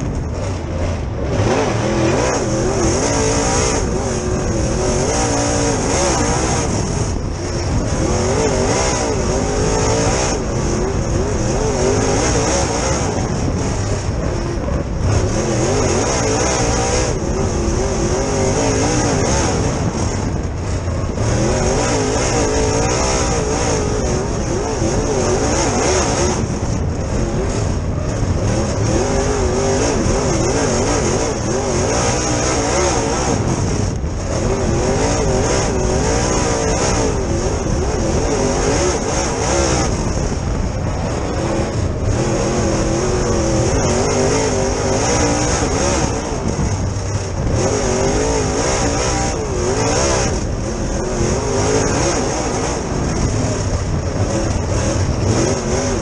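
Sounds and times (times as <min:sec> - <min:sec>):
race car engine: 0:00.0 - 0:56.0.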